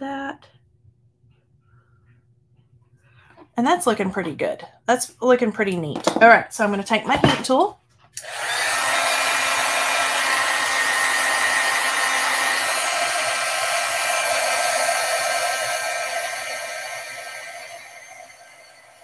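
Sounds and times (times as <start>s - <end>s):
heat gun blowing with a whine: 8.2s - 19.0s.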